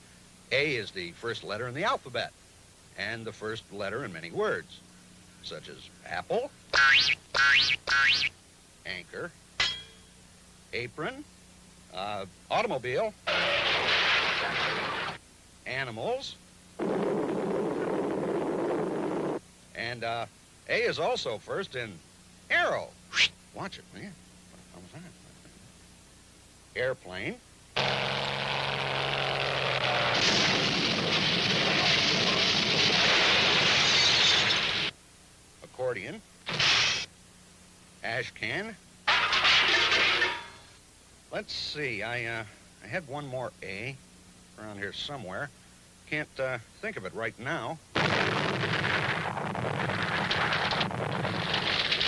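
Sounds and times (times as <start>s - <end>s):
cartoon avalanche crash: 13.3s - 15.2s, 16.8s - 19.4s, 29.7s - 34.9s, 36.5s - 37.1s, 48.0s - 52.0s.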